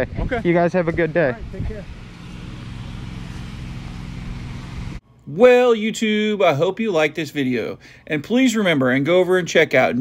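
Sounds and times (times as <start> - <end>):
street noise: 0.0 - 6.1
vehicle engine running: 0.4 - 5.0.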